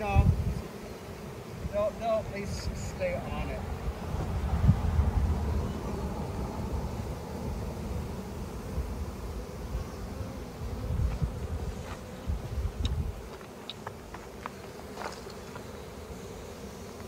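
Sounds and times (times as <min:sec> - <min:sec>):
bee swarm buzzing: 0:00.0 - 0:17.0.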